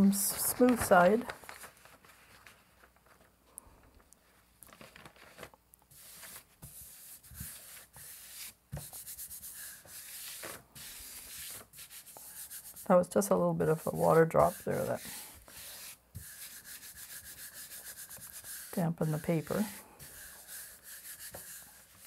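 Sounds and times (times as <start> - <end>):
hand rubbing paper: 0.0 - 3.3, 4.2 - 22.0.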